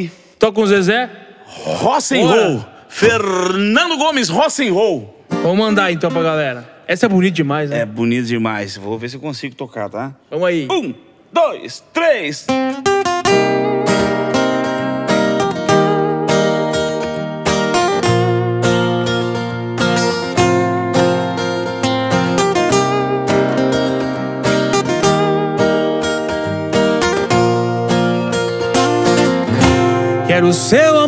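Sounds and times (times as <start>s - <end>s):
acoustic guitars strumming and picking: 5.2s - 6.5s, 12.5s - 31.0s
cajon beat: 19.8s - 30.7s.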